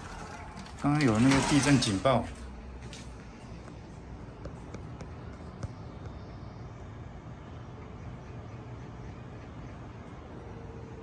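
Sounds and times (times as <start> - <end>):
city background noise at night: 0.0 - 11.0.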